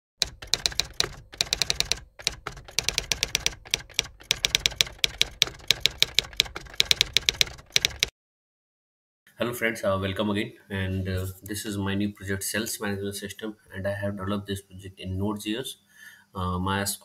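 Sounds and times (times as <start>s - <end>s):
typewriter keys clacking: 0.2s - 8.1s.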